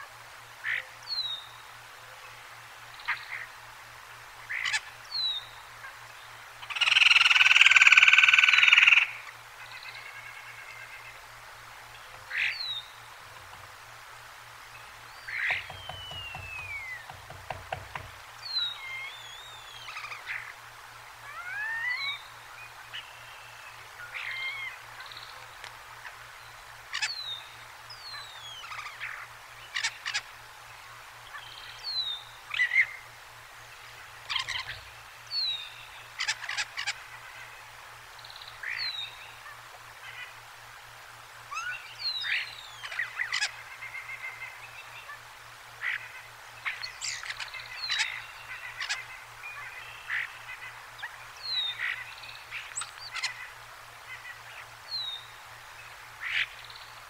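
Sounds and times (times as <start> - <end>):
bird chirps and rattling notes: 15.4 - 18.8
high falling bird whistle: 15.5 - 18.6.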